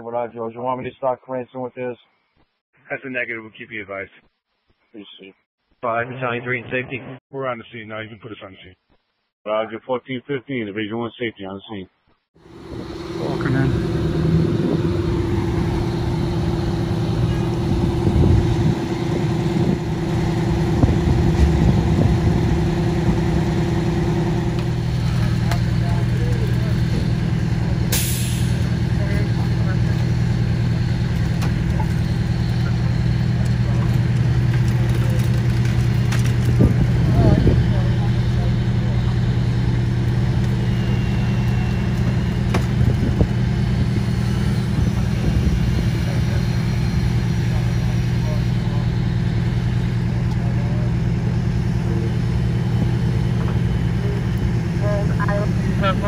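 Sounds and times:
engine running steadily: 12.4 - 56.0
short sharp hiss: 27.9 - 28.6.

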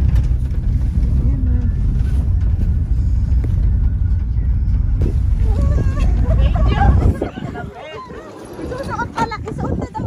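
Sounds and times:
vehicle rumble from inside: 0.0 - 10.0.

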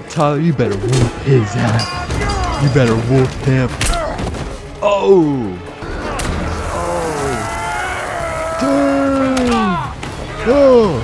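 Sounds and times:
fight scene clatter: 0.2 - 4.8.

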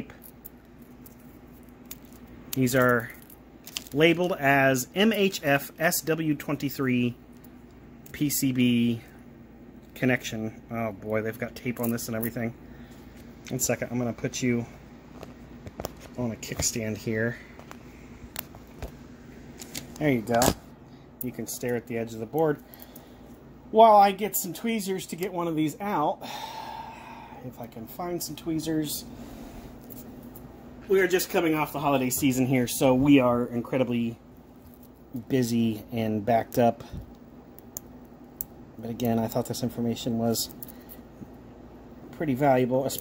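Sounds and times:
faint steady hum: 0.0 - 43.0.

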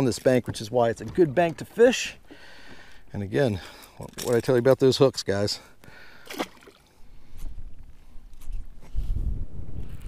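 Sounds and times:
water lapping on rocks: 5.9 - 8.0
wind buffeting microphone: 7.2 - 10.0.

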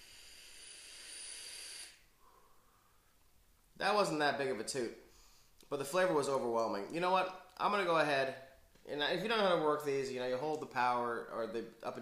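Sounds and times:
vape hissing: 0.0 - 2.1.

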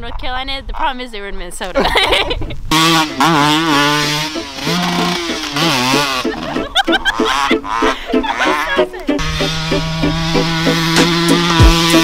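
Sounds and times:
dirt bike engine revving: 2.7 - 12.0.

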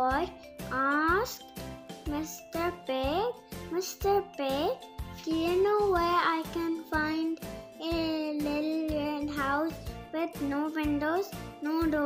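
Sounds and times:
soft background music: 0.0 - 12.0
child singing: 2.2 - 12.0.

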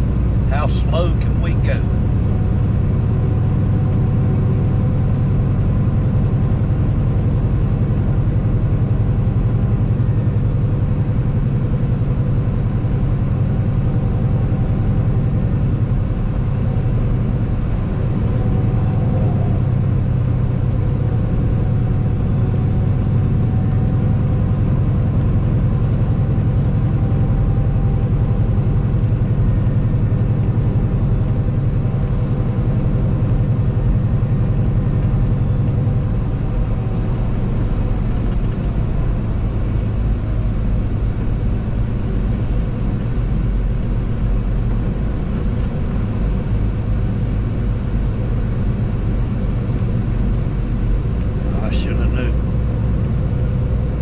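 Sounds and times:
road noise: 0.0 - 54.0
truck engine drone: 0.0 - 54.0.

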